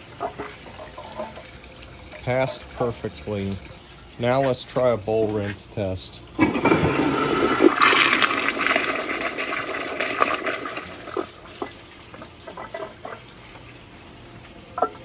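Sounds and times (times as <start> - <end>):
refill water trickling: 0.0 - 15.0
toilet flushing: 0.0 - 15.0
water gurgles: 0.0 - 15.0.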